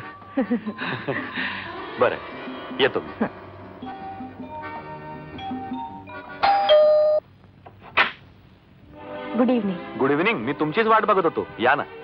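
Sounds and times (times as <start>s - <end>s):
soft film music: 0.0s - 7.0s, 8.8s - 12.0s
two-note doorbell chime: 5.4s - 7.2s.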